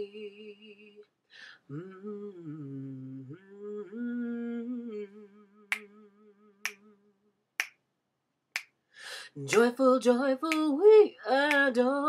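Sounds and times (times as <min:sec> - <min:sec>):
finger snaps: 0:05.7 - 0:05.9, 0:06.6 - 0:06.8, 0:07.6 - 0:07.8, 0:08.6 - 0:08.8, 0:10.5 - 0:10.8, 0:11.5 - 0:11.7.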